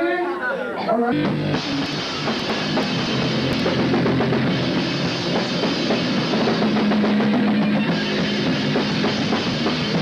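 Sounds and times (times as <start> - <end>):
drum kit: 1.1 - 10.0
live rock band playing: 1.1 - 10.0.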